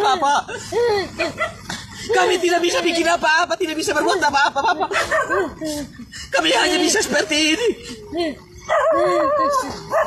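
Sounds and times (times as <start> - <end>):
man crying and wailing: 0.0 - 9.8.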